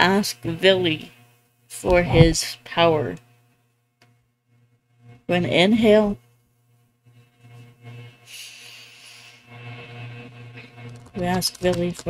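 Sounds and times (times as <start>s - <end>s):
faint low hum: 1.8s - 8.2s.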